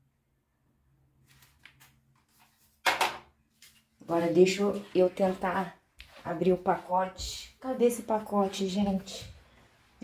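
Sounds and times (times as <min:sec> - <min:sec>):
sharp knock in tiled room: 0:02.8 - 0:03.3.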